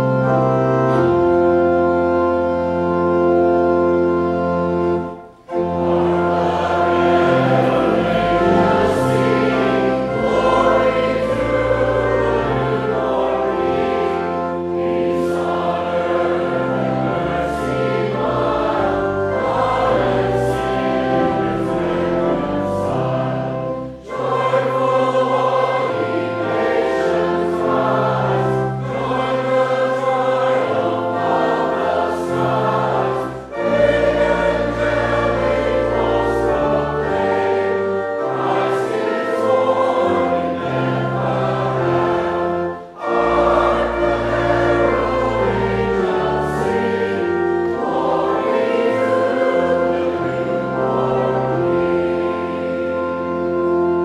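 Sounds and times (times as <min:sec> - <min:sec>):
choir and congregation singing a hymn: 0:00.0 - 0:54.0
pipe organ: 0:00.0 - 0:54.0.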